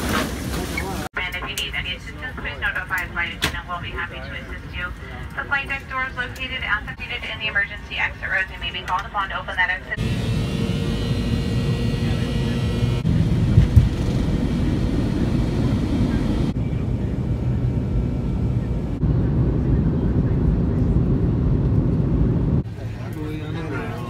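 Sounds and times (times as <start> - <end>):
airliner cabin engine noise: 0.0 - 24.0.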